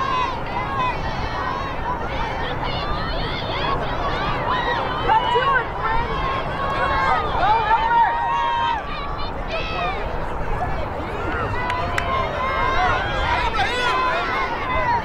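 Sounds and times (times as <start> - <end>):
girls shouting: 0.0 - 10.1, 11.2 - 15.0.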